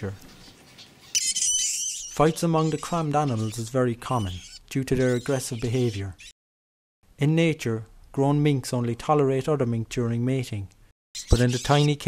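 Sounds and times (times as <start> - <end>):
mink squealing: 0.8 - 6.4, 11.2 - 12.0.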